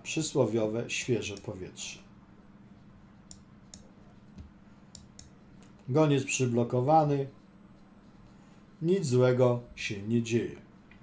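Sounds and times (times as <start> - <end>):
man speaking: 0.0 - 2.1, 5.9 - 7.4, 8.8 - 10.7
computer mouse clicks: 3.3 - 5.8.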